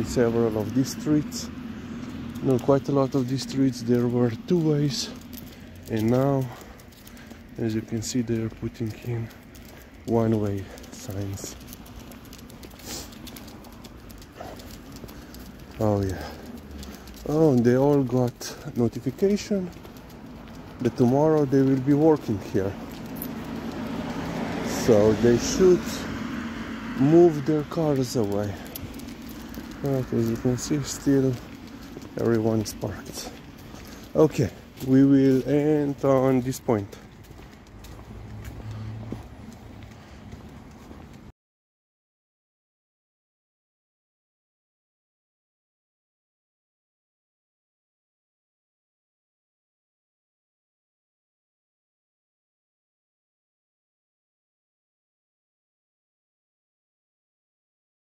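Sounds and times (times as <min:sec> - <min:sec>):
dog claws clicking on pavement: 0:00.0 - 0:41.3
footsteps on asphalt: 0:00.0 - 0:41.3.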